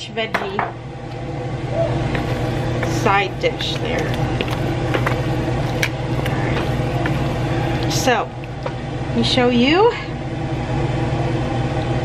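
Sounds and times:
appliance mechanical hum: 0.0s - 12.0s
wooden spoon scraping metal pot: 2.2s - 8.2s.

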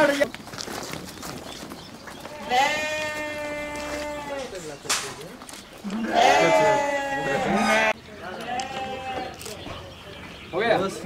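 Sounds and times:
sheep bleating: 2.2s - 4.5s, 5.8s - 9.3s.

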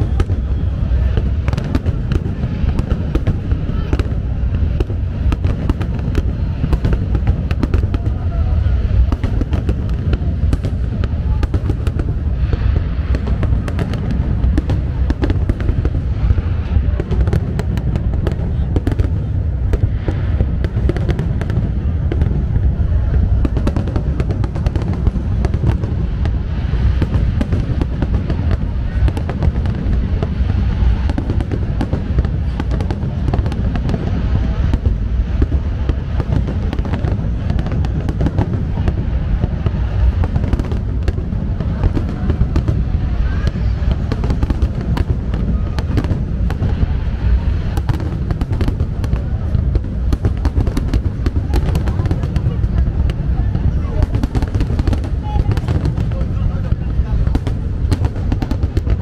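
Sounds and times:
deep rumble: 0.0s - 59.0s
fireworks bursting: 0.0s - 59.0s
fireworks crackle: 0.0s - 59.0s.

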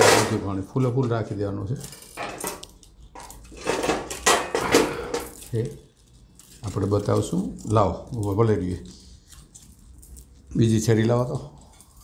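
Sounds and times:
foil crinkling: 2.5s - 12.0s.

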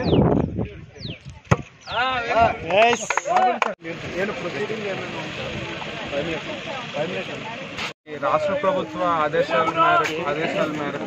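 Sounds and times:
football kick thump: 1.4s - 1.7s.

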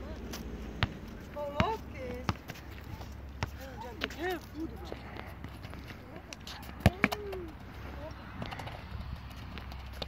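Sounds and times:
football thudding on asphalt: 0.3s - 7.5s.

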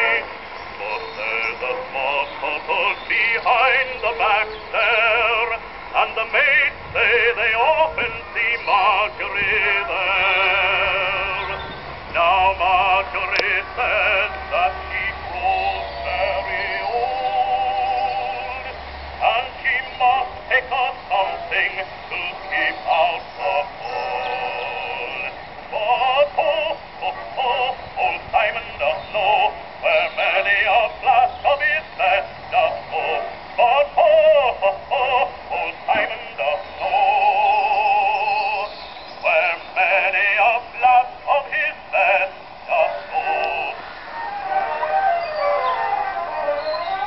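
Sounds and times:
phonograph man singing with orchestra: 0.0s - 47.0s.

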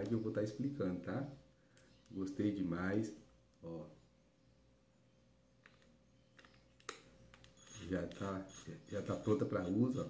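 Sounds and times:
man talking: 0.0s - 1.4s, 2.1s - 4.0s, 7.8s - 10.0s.

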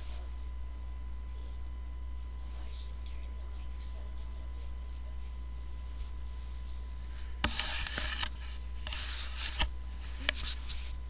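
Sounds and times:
bedding rustling: 0.0s - 1.0s, 2.0s - 11.0s.

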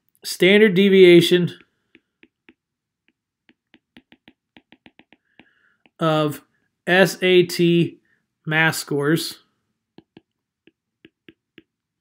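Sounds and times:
stylus tapping on glass screen: 1.5s - 6.0s, 10.0s - 11.8s.

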